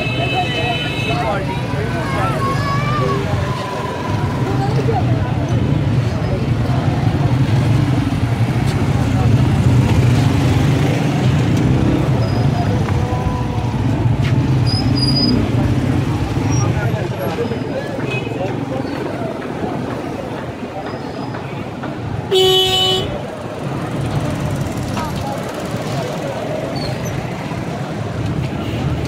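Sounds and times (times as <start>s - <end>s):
crowd talking: 0.0s - 29.0s
motor vehicle engines: 0.0s - 29.0s
motorcycles: 0.0s - 29.0s.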